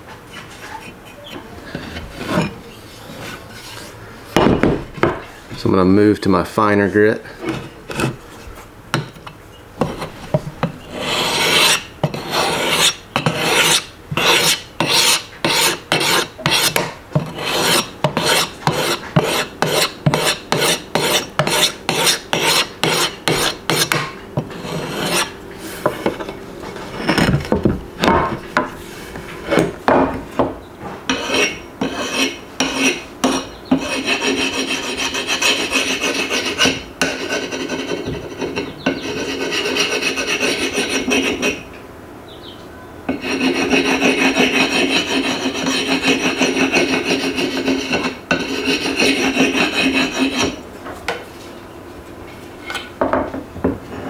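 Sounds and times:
sharpener rasping along axe edge: 10.9 - 25.3.

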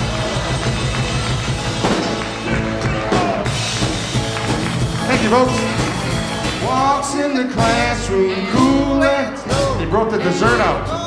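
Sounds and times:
drum hits: 0.0 - 7.0
live rock band playing: 0.0 - 11.0.

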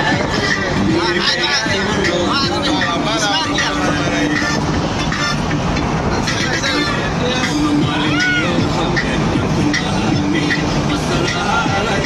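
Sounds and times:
people's voices: 0.0 - 12.0
vehicle running noise from inside: 0.0 - 12.0.

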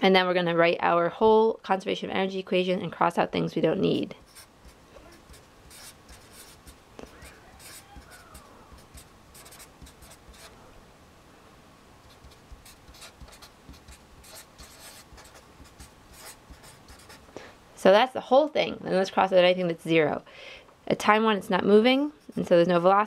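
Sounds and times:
marker scratching on paper: 3.8 - 10.5, 12.0 - 17.2, 22.1 - 23.0.

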